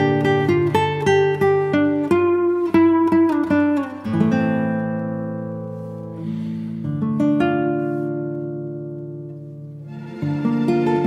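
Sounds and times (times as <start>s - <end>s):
acoustic guitar chord ringing: 0.0s - 11.0s.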